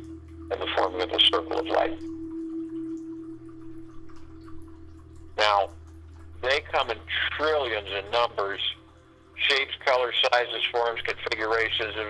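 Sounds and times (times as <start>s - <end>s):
low drone: 0.0s - 12.0s
pure held tone: 0.0s - 12.0s.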